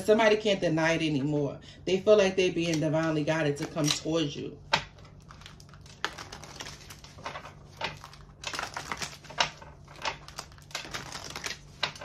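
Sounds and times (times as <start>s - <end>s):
cards being shuffled: 5.0s - 12.0s.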